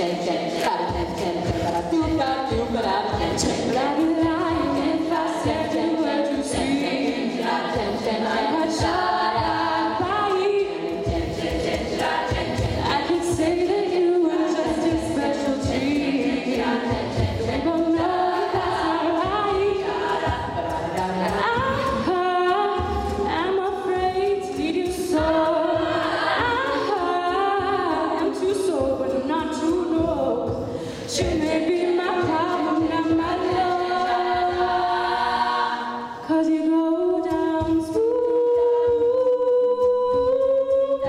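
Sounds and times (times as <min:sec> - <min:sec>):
female a cappella group singing: 0:00.0 - 0:41.0.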